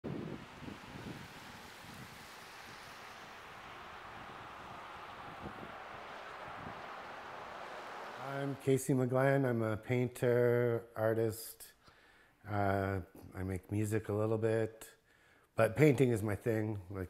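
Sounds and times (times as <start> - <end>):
wind: 0.0 - 11.3
traffic on wet road: 0.1 - 8.7.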